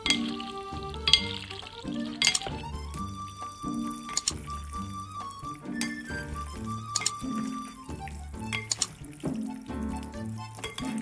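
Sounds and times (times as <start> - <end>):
salad servers clinking glass bowl: 0.0 - 0.4, 1.1 - 1.4, 2.2 - 2.5, 8.5 - 8.9, 10.6 - 11.0
background music: 0.0 - 11.0.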